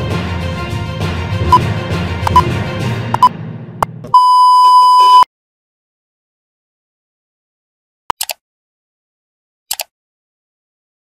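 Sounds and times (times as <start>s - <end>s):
theme music: 0.0s - 4.2s
sharp click: 8.1s - 8.4s, 9.7s - 9.9s.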